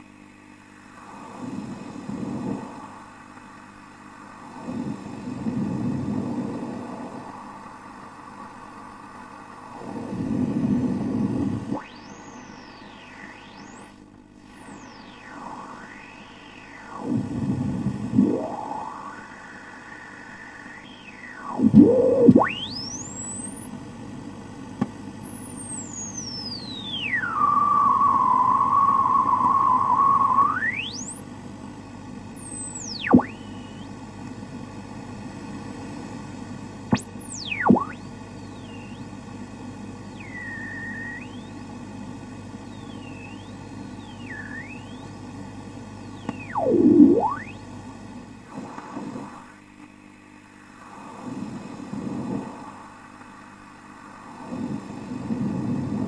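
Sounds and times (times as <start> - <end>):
electrical hum: 0.0 - 56.0
radio static hiss: 0.0 - 56.0
sliding interference whistles: 11.7 - 23.8, 25.0 - 31.3, 32.3 - 33.9, 36.9 - 39.1, 40.1 - 41.6, 42.6 - 45.2, 46.0 - 47.7.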